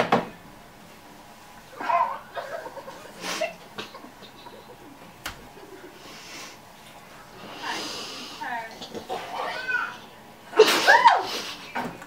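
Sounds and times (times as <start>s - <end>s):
person laughing: 2.2s - 6.0s, 10.6s - 11.8s.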